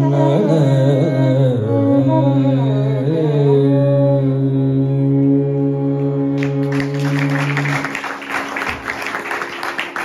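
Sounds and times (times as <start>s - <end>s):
man singing ornamented phrases: 0.0s - 7.9s.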